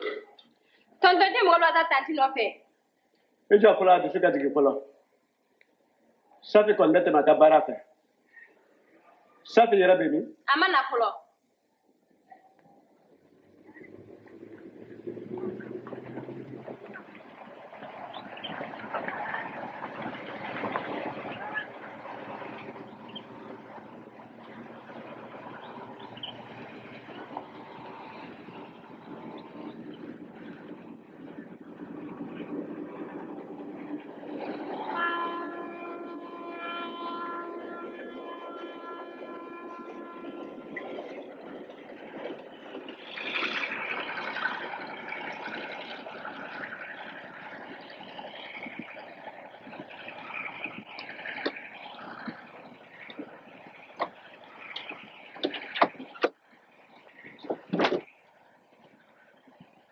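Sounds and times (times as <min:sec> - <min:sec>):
diesel locomotive running: 0:13.0 - 0:59.9
train horn blast: 0:13.9 - 0:29.6, 0:33.2 - 0:41.8.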